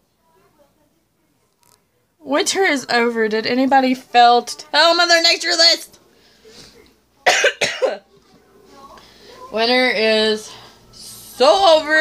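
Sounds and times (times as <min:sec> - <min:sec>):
woman coughing: 0:07.2 - 0:08.0.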